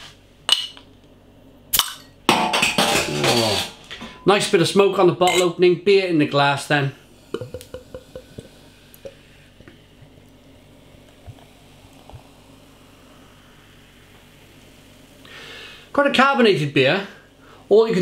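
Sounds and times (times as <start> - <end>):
foam fizzing hiss: 6.7 - 17.6
beer pouring into glass: 7.3 - 14.7.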